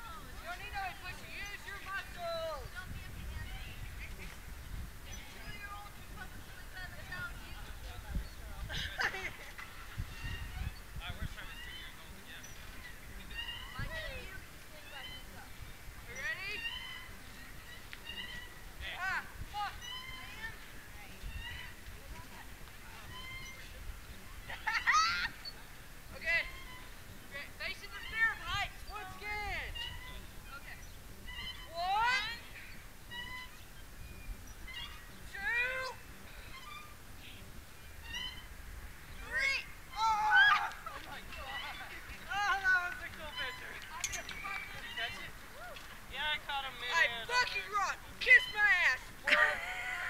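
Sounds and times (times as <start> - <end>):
metal swing hangers squeaking: 0.0 - 49.4
people squealing and shrieking: 39.2 - 40.8.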